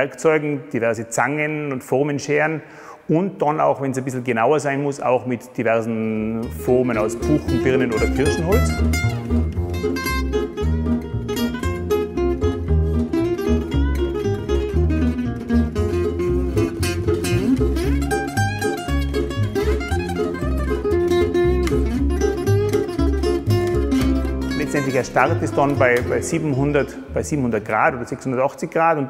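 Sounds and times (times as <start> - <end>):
plucked strings music: 6.2 - 28.4
pulsing bass line: 6.5 - 28.1.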